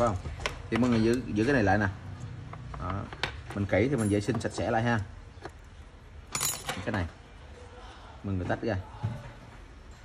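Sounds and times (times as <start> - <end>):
metallic clink: 3.8 - 4.6, 6.3 - 6.9.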